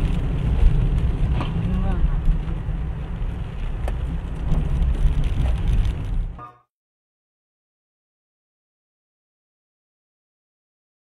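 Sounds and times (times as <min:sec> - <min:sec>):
car driving on wet road: 0:00.0 - 0:06.4.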